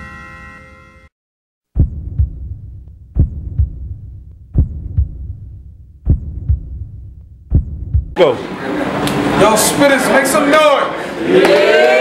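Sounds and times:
heartbeat thumps: 1.7s - 8.2s
low hum: 1.8s - 8.2s.

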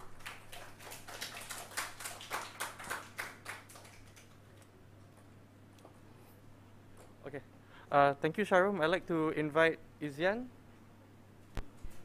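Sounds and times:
audience applause: 0.0s - 4.5s.

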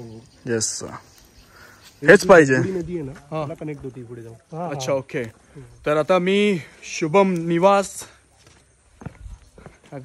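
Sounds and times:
footsteps on paved path: 0.8s - 10.0s.

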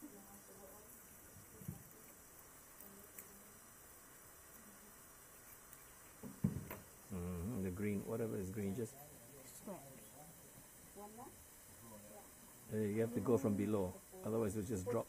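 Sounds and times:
man talking: 7.1s - 9.0s, 12.7s - 15.0s.

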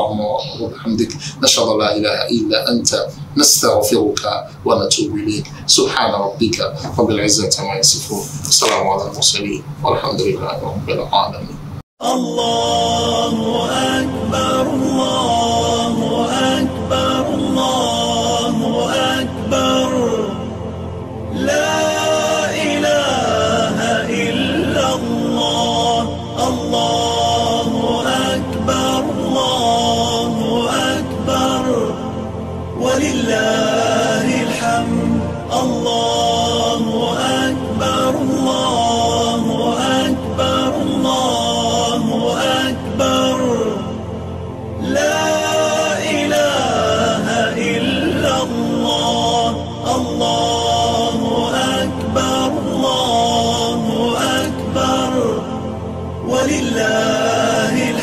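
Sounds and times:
steady backing: 0.0s - 11.8s
person chanting melodically: 0.0s - 20.7s, 21.3s - 58.0s.

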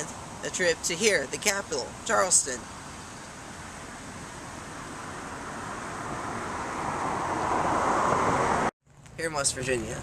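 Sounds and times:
rushing road traffic: 0.0s - 10.0s.

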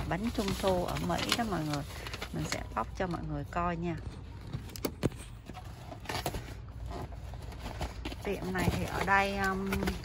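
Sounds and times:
cardboard clicks and rustles: 0.0s - 3.1s, 4.0s - 10.0s.

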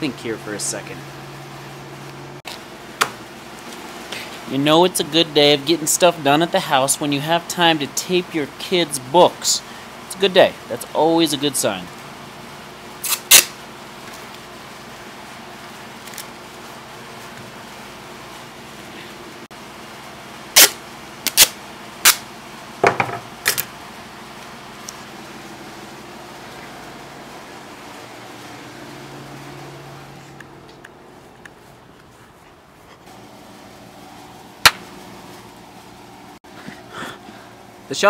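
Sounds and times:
low room hum: 0.0s - 38.0s
tape ripping off roll: 13.0s - 13.5s.

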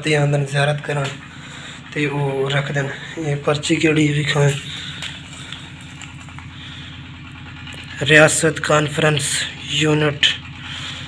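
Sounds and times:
engine running with fast pulse: 0.0s - 11.0s.

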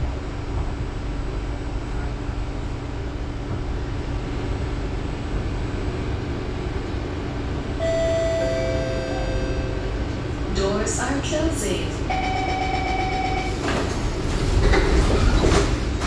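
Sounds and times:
train car humming: 0.0s - 16.0s.

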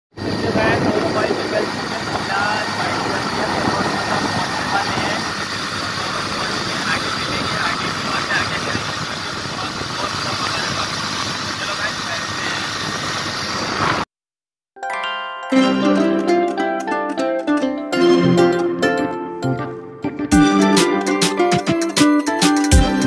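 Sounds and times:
motorcycle engine: 0.2s - 14.0s
wind noise: 0.2s - 14.1s
faint man's voice: 0.4s - 12.8s.

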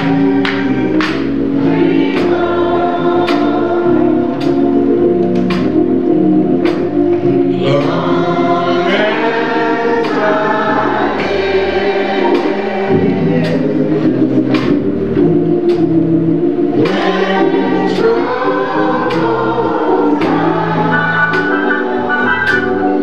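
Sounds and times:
group of voices singing gospel: 0.0s - 23.0s
low bass notes: 0.0s - 23.0s
sharp beat: 20.1s - 23.0s.

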